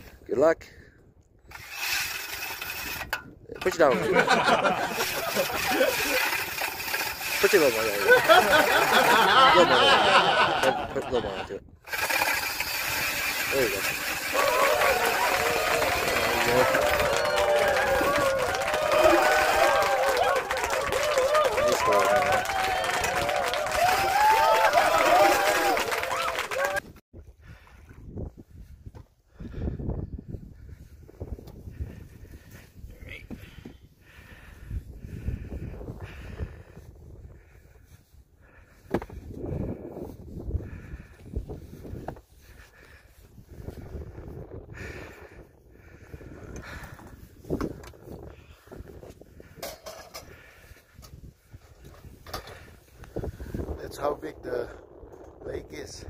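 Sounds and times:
people laughing loudly: 3.8 - 6.5, 7.3 - 11.6, 13.6 - 26.8.

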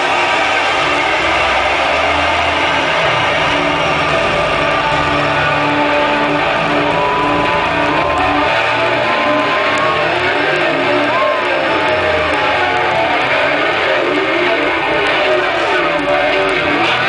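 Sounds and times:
repeating low riff: 0.0 - 17.0.

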